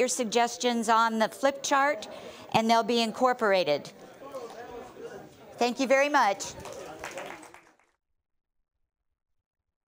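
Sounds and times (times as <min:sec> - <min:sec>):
audience applause: 0:05.9 - 0:08.0.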